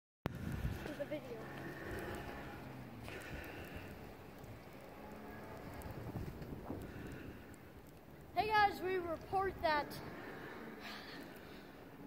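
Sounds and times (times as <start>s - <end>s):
faint wind noise on microphone: 0.3s - 10.8s.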